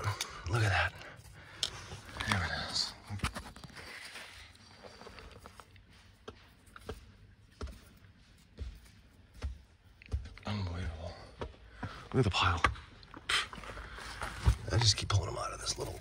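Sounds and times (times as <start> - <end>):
stones and soil clicking and scraping: 0.0 - 16.0.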